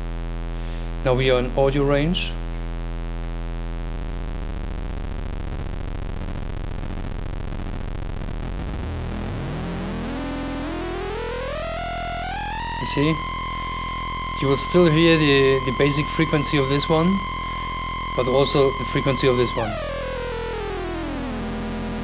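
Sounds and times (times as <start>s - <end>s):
synthesizer tone: 8.6s - 22.0s
rising synth pitch glide: 8.8s - 22.0s.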